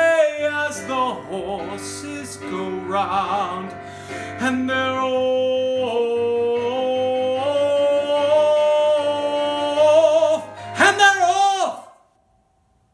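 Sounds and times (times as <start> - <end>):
man singing: 0.0 - 12.1.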